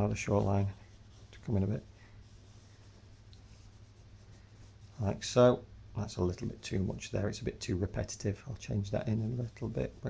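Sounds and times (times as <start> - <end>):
charcoal scratching on paper: 0.0 - 5.1
low steady hum: 0.0 - 10.0.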